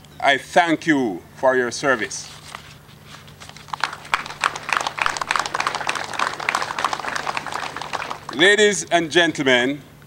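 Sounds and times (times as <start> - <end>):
audience applauding: 3.6 - 8.7.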